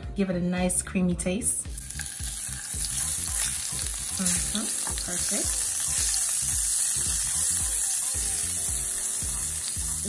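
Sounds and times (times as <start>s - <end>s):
background music with low beat: 0.0s - 10.0s
butter sizzling in skillet: 1.7s - 10.0s.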